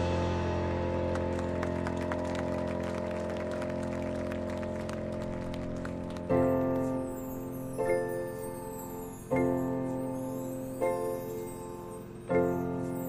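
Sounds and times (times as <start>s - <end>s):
marching band sustained chord: 0.0s - 11.7s.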